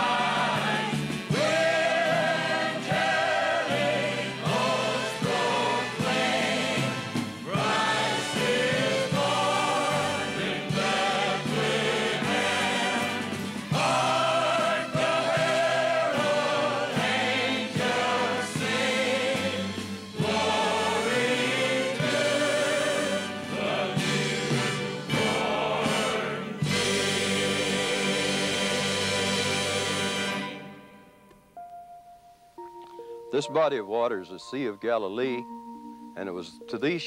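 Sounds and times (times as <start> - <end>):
choir singing: 0.0 - 30.8.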